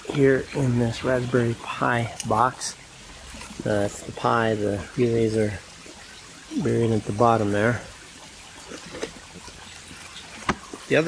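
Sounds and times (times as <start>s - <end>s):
water trickling: 0.0s - 11.0s.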